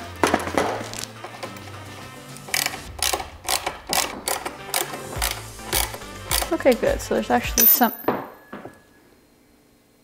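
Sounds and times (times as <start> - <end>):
background music with beat: 0.0 - 7.6
screwdriver turning screw into metal: 2.5 - 6.9.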